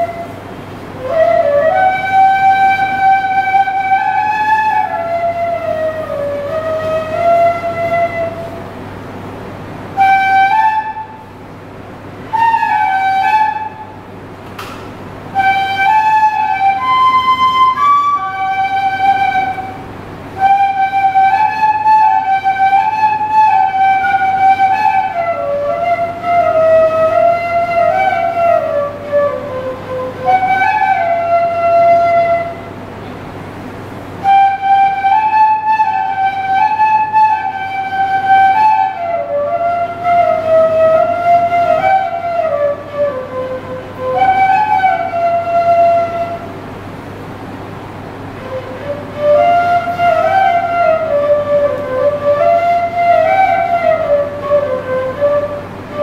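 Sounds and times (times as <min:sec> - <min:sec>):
bamboo flute melody: 0:00.0 - 0:08.8, 0:09.8 - 0:33.1, 0:34.0 - 0:47.0, 0:48.2 - 0:56.0
low steady hum: 0:00.0 - 0:56.0.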